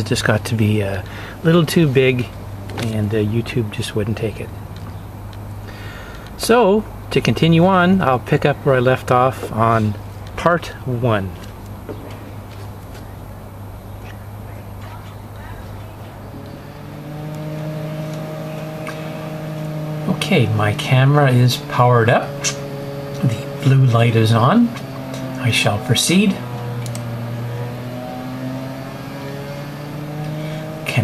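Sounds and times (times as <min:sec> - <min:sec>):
low machine hum: 0:00.0 - 0:31.0.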